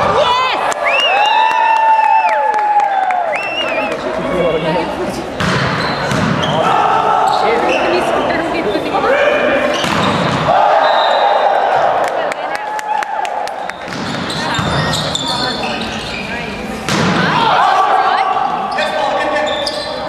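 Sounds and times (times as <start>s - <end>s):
sneakers squeaking: 5.3s - 8.8s, 9.5s - 11.8s, 13.6s - 20.0s
volleyball being struck: 5.4s - 6.5s, 9.8s - 10.6s, 16.8s - 17.5s
players shouting: 6.4s - 14.6s, 17.2s - 19.8s.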